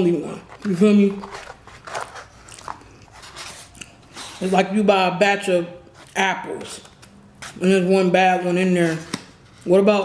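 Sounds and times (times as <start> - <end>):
close chewing and mouth sounds: 0.5 - 4.4.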